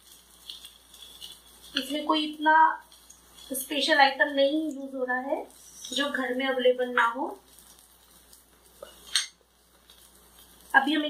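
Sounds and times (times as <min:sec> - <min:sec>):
glass bowl clinking on stone counter: 0:08.8 - 0:09.4.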